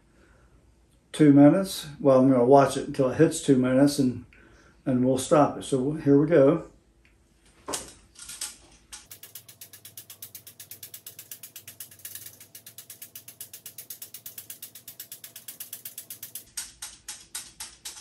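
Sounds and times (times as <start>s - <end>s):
rapid clicking of whirled device: 8.2s - 18.0s.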